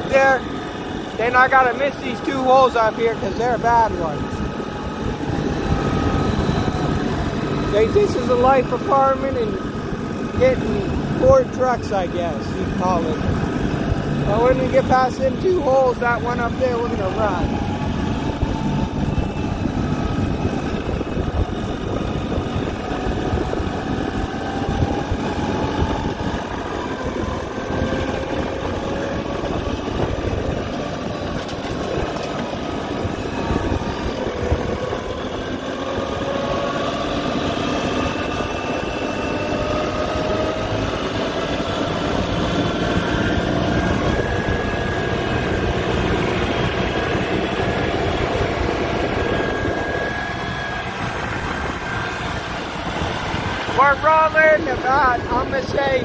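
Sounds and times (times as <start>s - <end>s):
tractor diesel engine running: 0.0s - 56.0s.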